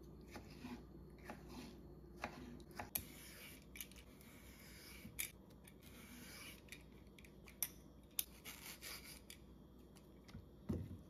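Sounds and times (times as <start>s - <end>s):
vegetable peeler slicing strokes: 8.2s - 9.3s.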